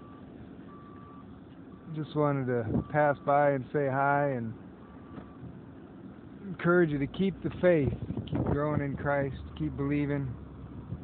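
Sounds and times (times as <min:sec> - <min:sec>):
reversing alarm beeping: 0:00.0 - 0:02.0, 0:04.8 - 0:05.4
low background rumble: 0:00.0 - 0:11.0.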